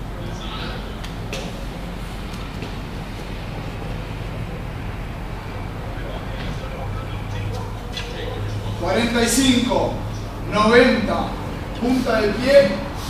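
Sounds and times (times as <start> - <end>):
room noise: 0.0 - 13.0
steady low hum: 0.0 - 13.0.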